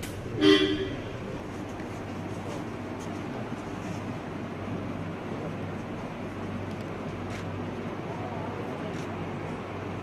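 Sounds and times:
steady background noise: 0:00.0 - 0:10.0
vehicle horn toot: 0:00.4 - 0:01.2.

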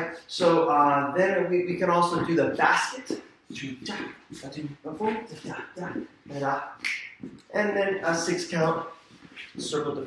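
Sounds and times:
man vocalising a beat: 0:00.0 - 0:10.0.

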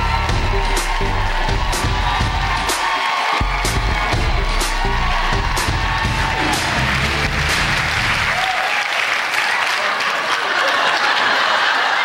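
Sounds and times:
music playing: 0:00.0 - 0:08.6
audience applauding: 0:00.0 - 0:12.0.

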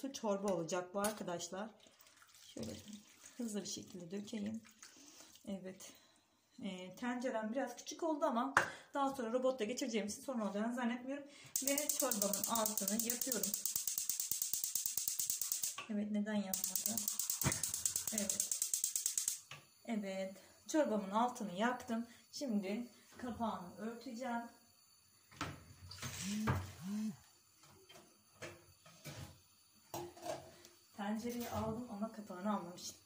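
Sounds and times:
gas hob spark igniter clicking: 0:11.6 - 0:15.8, 0:16.6 - 0:19.6
woman humming: 0:26.2 - 0:27.2.

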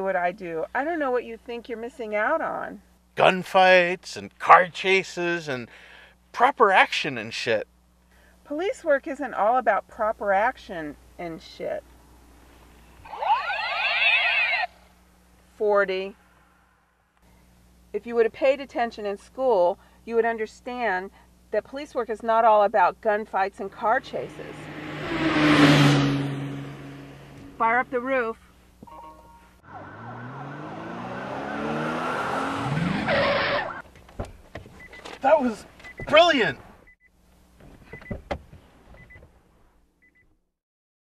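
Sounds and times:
car engine revving: 0:23.7 - 0:28.3, 0:29.6 - 0:33.8
harsh screech: 0:29.7 - 0:33.8.

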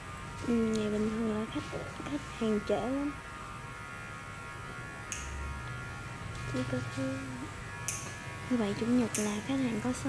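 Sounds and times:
electrical hum and buzz: 0:00.0 - 0:10.0.

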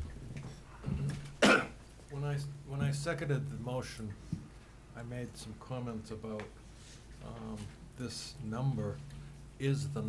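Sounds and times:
person coughing: 0:01.0 - 0:01.8.

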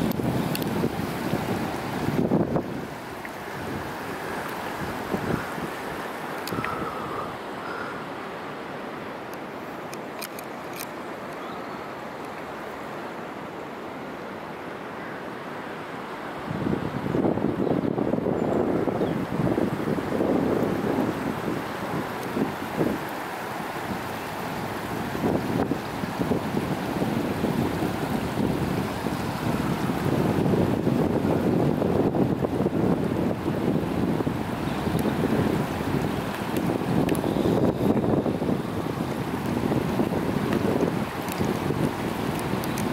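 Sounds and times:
faint high ticks: 0:00.0 - 0:00.8, 0:06.3 - 0:06.9, 0:34.9 - 0:35.2, 0:36.0 - 0:37.3, 0:40.5 - 0:42.9
wind buffeting microphone: 0:00.0 - 0:07.9, 0:16.4 - 0:42.9
river water rushing over rocks: 0:00.0 - 0:42.9.

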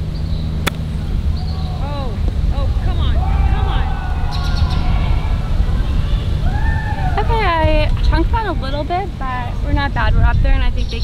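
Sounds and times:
steady low rumble: 0:00.0 - 0:11.0
golf club striking ball: 0:00.6 - 0:01.0.

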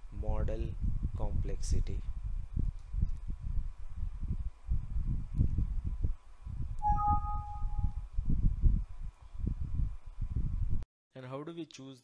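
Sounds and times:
two-note alert chime: 0:06.8 - 0:08.0.

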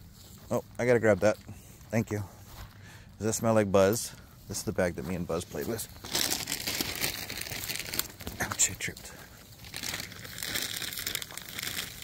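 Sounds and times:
footsteps crunching through dry leaves: 0:00.0 - 0:12.0.

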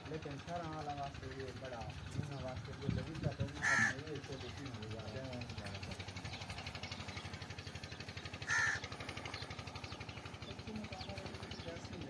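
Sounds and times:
low pulsing background noise: 0:00.0 - 0:12.0.

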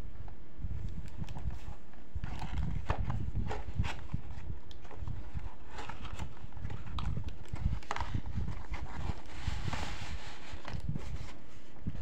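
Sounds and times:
low rumble of handling: 0:00.2 - 0:12.0.

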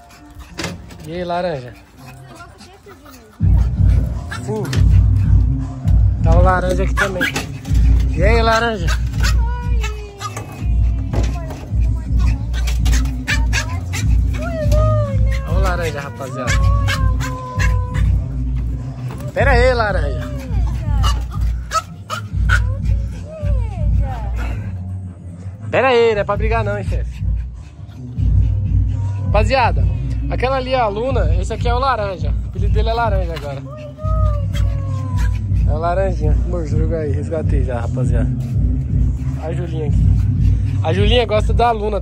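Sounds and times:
dog whining: 0:06.7 - 0:24.9, 0:32.4 - 0:36.5.

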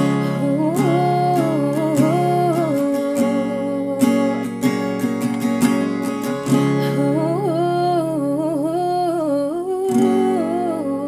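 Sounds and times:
woman humming a melody: 0:00.0 - 0:04.5, 0:07.0 - 0:11.0
acoustic guitar strumming: 0:00.0 - 0:09.0, 0:09.8 - 0:11.0.

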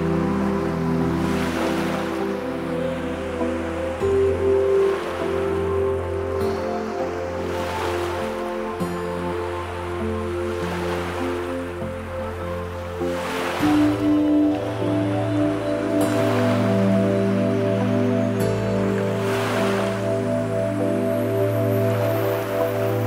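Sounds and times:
calm ambient music: 0:00.0 - 0:23.0
ocean surf: 0:00.0 - 0:23.0.

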